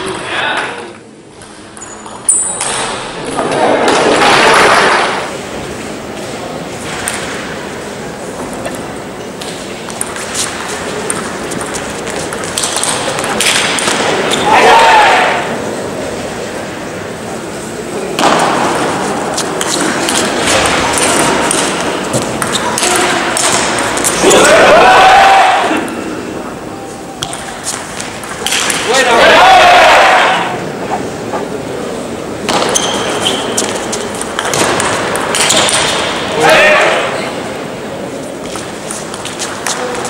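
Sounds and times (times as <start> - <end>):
crowd shouting and cheering: 13.8 - 15.9, 18.2 - 27.2, 28.6 - 31.7, 35.9 - 37.7.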